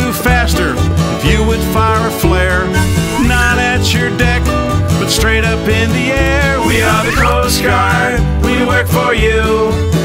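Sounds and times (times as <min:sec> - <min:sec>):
strummed acoustic guitar: 0:00.0 - 0:10.0
sliding melody: 0:02.6 - 0:04.7, 0:06.3 - 0:07.9.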